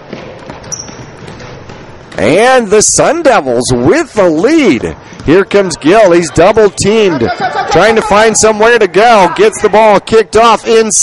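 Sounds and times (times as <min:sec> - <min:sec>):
basketball dribbled on hardwood: 0:00.0 - 0:02.2
gym background noise: 0:00.0 - 0:11.0.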